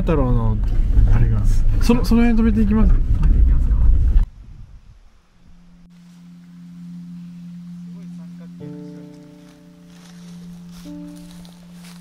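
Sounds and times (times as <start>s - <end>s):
low drone tone: 5.1s - 12.0s.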